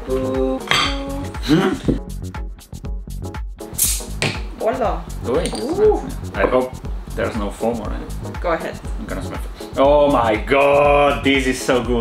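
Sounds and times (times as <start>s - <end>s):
background music: 0.0s - 12.0s
glass bottles clinking: 0.6s - 1.1s, 5.3s - 5.9s
bottle cap opening hiss: 3.7s - 4.4s.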